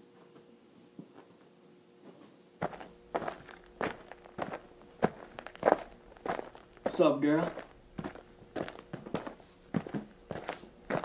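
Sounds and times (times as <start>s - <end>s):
footsteps walking: 2.6s - 11.0s.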